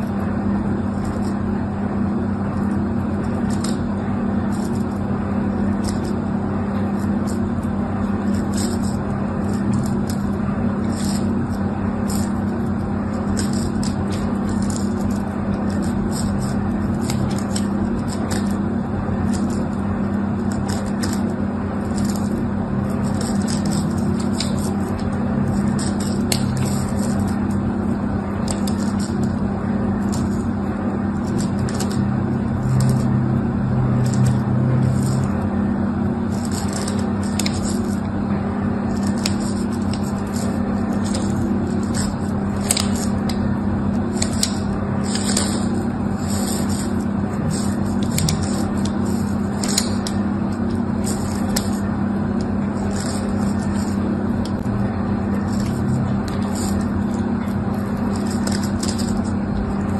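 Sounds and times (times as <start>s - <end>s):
steady low hum: 0.0s - 59.9s
knife scratching soap: 0.1s - 1.4s, 2.6s - 33.2s, 34.0s - 35.4s, 36.3s - 38.1s, 38.8s - 54.6s, 55.2s - 59.9s.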